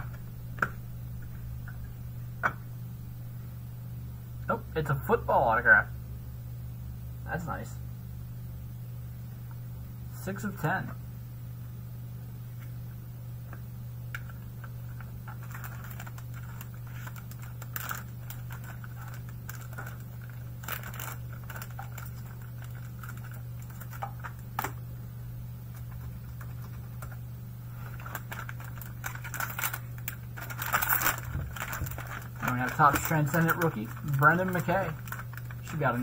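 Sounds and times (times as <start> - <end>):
steady low hum: 0.0 - 36.0
plastic wrapping rustling: 14.1 - 24.8, 25.7 - 36.0.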